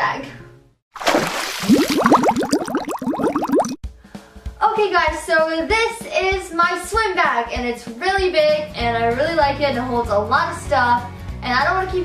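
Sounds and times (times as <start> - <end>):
water splash: 0.9 - 3.8
rising bubble blips: 1.0 - 3.8.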